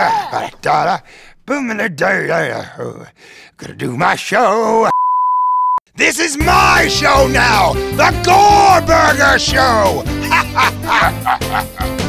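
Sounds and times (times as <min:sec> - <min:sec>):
theme music: 0:06.0 - 0:12.0
puppet monster laughing: 0:09.6 - 0:12.0.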